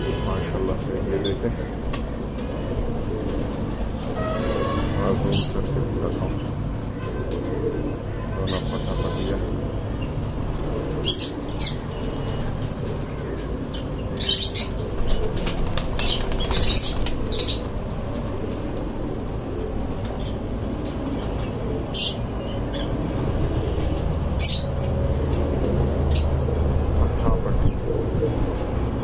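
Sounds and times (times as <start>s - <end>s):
pigeons flapping wings: 1.9s - 4.3s, 11.8s - 13.1s, 14.8s - 21.1s.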